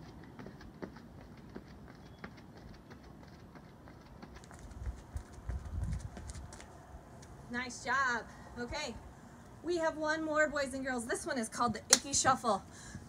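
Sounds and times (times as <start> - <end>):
sneakers tapping on concrete: 0.0 - 6.8.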